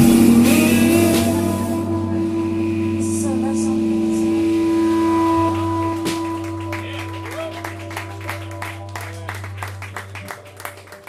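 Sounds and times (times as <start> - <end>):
band droning chord on guitars: 0.0 - 11.0.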